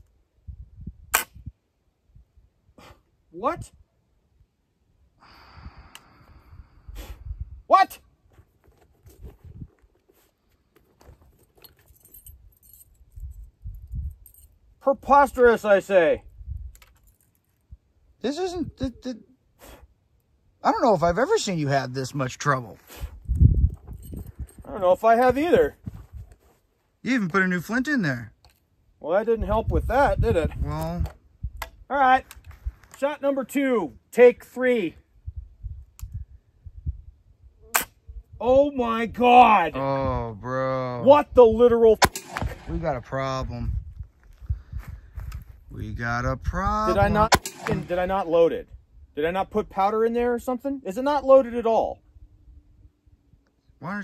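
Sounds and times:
faint click: 5.9 - 6.1
rifle lock metallic clicks: 42.0 - 42.7, 47.3 - 47.9
flintlock priming flash pop: 42.0 - 42.8.

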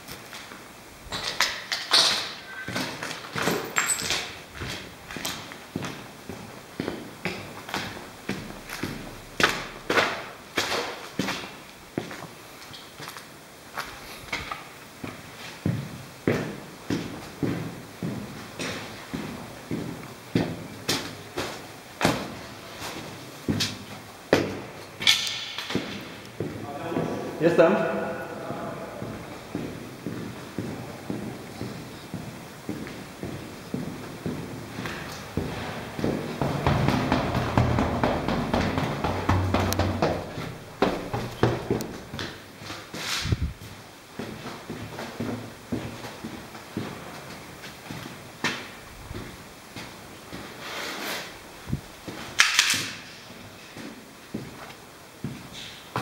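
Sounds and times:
footsteps on gritty concrete: 2.5 - 12.4, 28.4 - 50.6.

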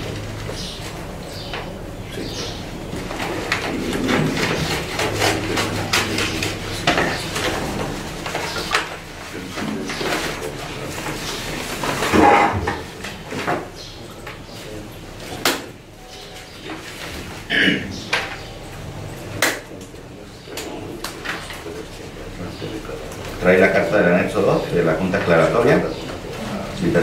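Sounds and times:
paper rustling and crackling: 2.9 - 12.3.

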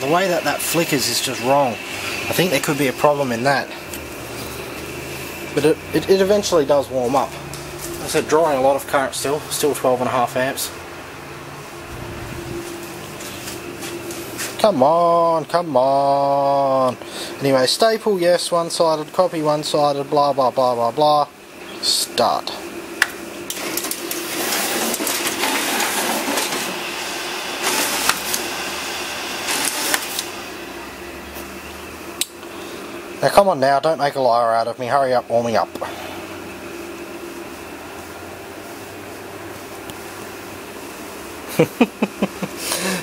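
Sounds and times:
photocopier humming: 0.0 - 43.0.

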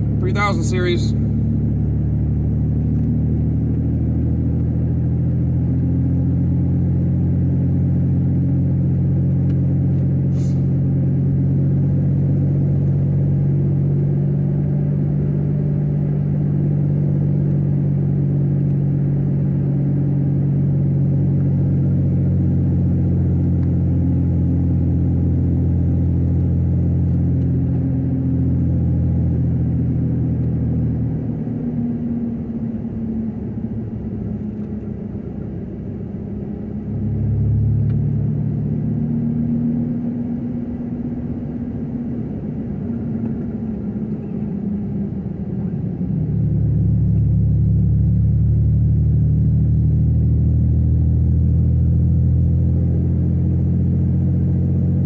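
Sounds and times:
pickup engine and road drone: 0.0 - 55.0.

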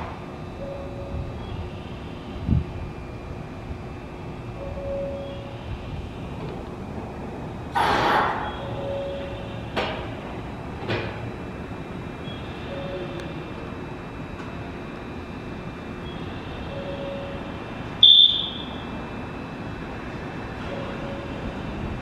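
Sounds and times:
short steady tone: 18.0 - 18.9.

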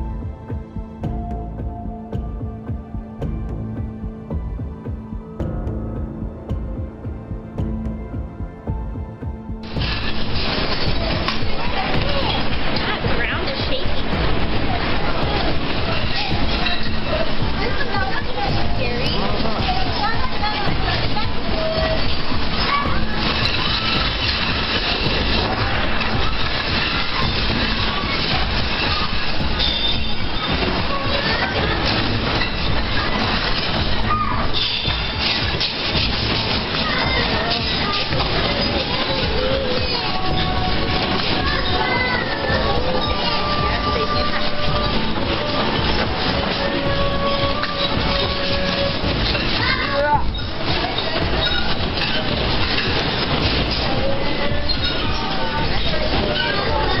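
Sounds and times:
room rumbling in earthquake: 0.0 - 57.0
people's voices: 5.0 - 57.0
tableware rattling: 9.6 - 57.0.

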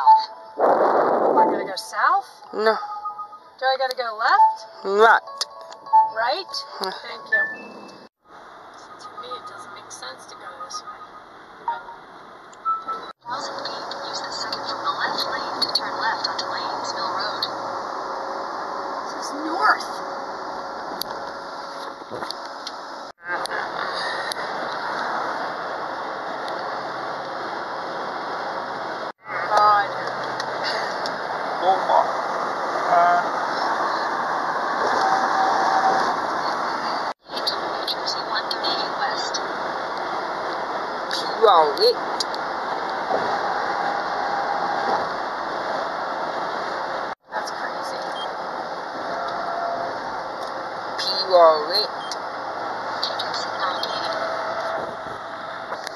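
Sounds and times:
short electronic beeps: 0.0 - 0.6, 2.4 - 8.1, 8.8 - 12.0, 12.6 - 13.1
steady tone: 0.0 - 46.1
road and engine noise in car: 0.0 - 55.9
car interior hum: 13.3 - 18.4.

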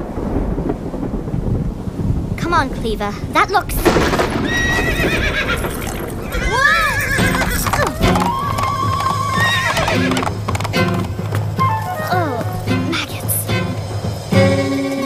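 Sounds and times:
hooves clattering: 3.4 - 15.0
horse neighing in alarm: 4.4 - 10.3
background music score: 7.1 - 15.0.

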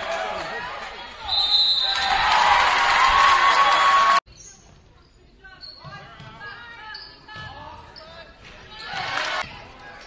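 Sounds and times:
voices of players and spectators: 0.0 - 10.0.

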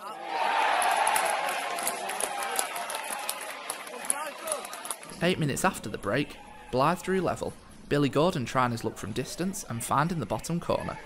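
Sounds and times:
crowd cheering and shouting: 0.0 - 5.1.

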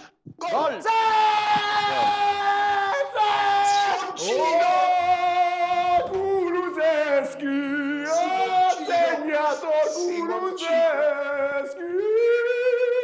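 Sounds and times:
man yelling goal cries: 0.4 - 6.1, 8.1 - 10.8.

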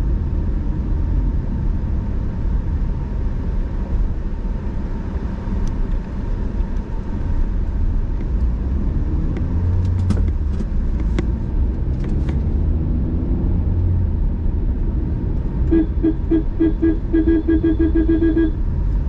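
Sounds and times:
car engine and tyre rumble: 0.0 - 19.0.

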